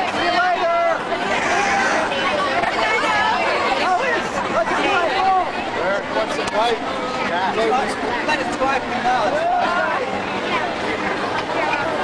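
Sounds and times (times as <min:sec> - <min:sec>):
overlapping voices chattering: 0:00.0 - 0:12.0.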